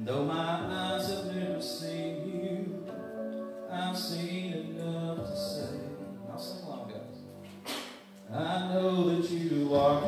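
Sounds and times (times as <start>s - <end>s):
man singing into a microphone: 0.0s - 6.9s, 8.2s - 10.0s.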